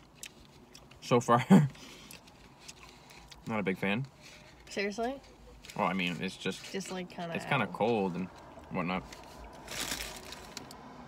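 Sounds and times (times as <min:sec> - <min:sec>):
paper wrapper crinkling: 0:09.0 - 0:10.8.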